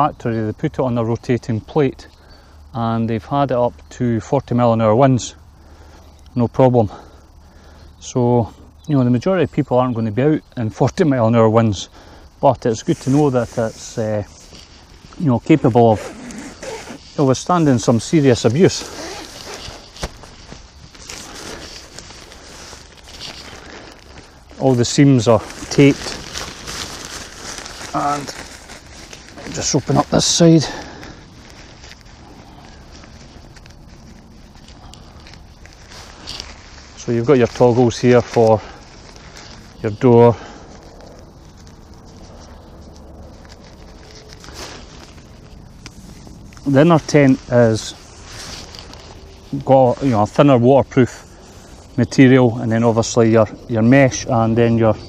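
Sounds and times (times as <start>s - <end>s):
tent flysheet rustling: 12.6s - 55.0s.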